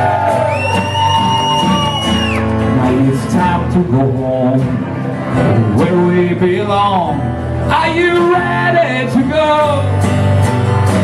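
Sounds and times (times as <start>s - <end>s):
acoustic guitars strumming: 0.0s - 11.0s
man singing: 2.6s - 10.2s.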